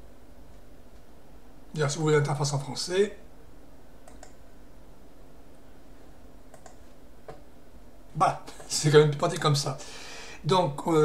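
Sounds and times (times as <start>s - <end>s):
faint steady hum: 0.0s - 11.0s
computer mouse clicks: 4.0s - 4.4s, 6.5s - 7.4s.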